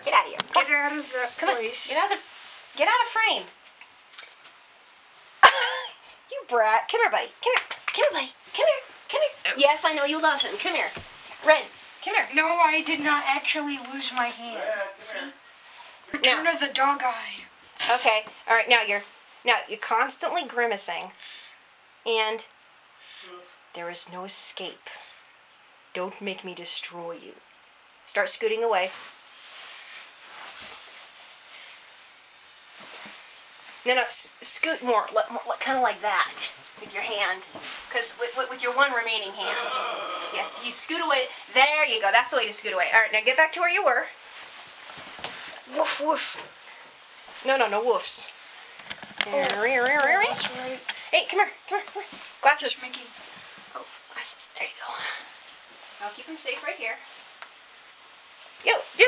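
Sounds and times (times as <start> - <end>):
room hiss: 0.0 - 59.0
clothing rustling on carpet: 0.6 - 3.2, 28.7 - 34.0, 36.7 - 39.3, 44.2 - 45.7.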